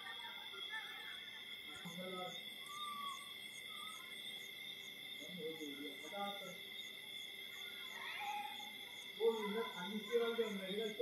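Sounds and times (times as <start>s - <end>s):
insects calling: 0.0s - 11.0s.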